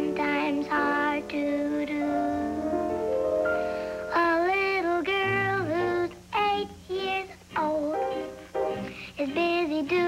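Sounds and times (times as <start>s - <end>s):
girl singing: 0.0s - 2.9s, 4.1s - 10.0s
light instrumental accompaniment: 7.5s - 10.0s.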